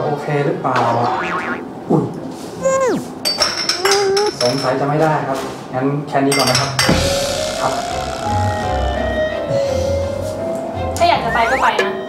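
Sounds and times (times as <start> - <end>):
comedic boing sound effect: 0.8 - 1.7, 6.9 - 9.1.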